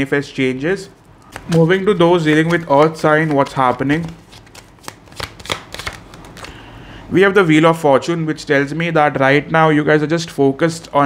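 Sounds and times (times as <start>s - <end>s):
cards clicking and flicking: 1.2s - 6.6s.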